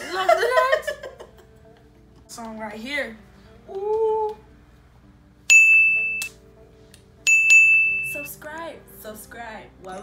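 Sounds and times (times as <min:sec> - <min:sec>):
bell-like dings: 0:05.5 - 0:06.3, 0:07.3 - 0:08.3.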